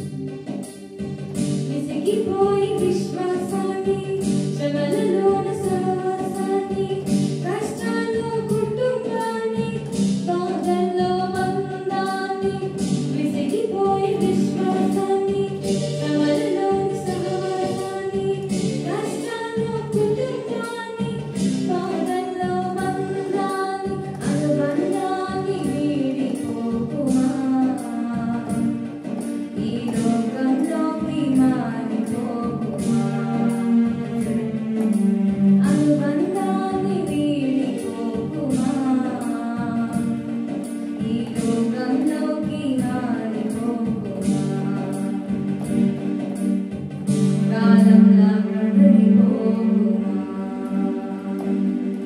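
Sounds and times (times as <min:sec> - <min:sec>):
electronic keyboard accompaniment: 0:00.0 - 0:52.0
girl singing: 0:01.7 - 0:28.7, 0:29.6 - 0:34.9, 0:35.5 - 0:40.2, 0:41.0 - 0:45.3, 0:47.5 - 0:51.7.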